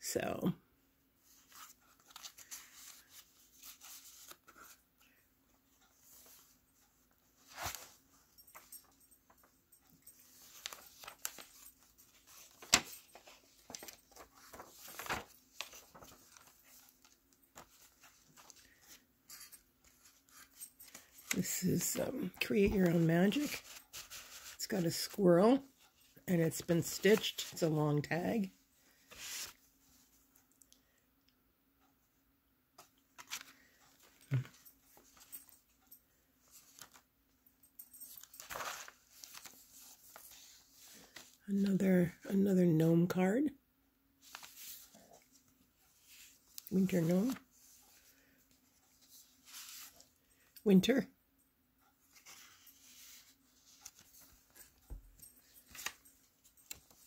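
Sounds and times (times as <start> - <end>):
paper pages rustling: 1.2 - 4.8, 5.7 - 9.4, 10.1 - 25.2, 25.9 - 30.2, 32.8 - 35.8, 36.4 - 37.0, 38.1 - 41.4, 44.2 - 50.2, 52.0 - 57.0.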